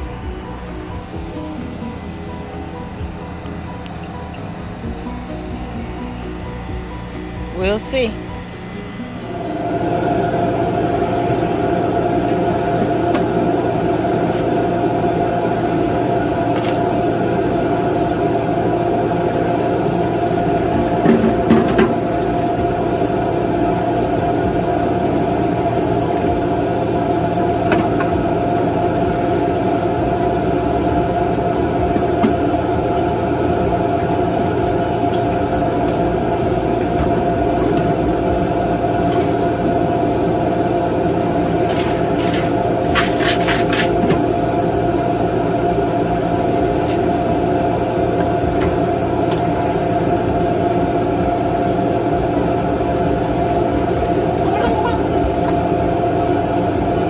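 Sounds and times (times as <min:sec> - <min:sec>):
loud machine hum: 0:00.0 - 0:57.0.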